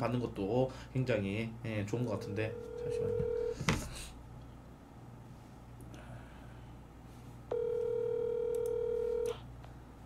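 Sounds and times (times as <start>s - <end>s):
telephone ringback tone: 2.5s - 3.6s, 7.5s - 9.4s.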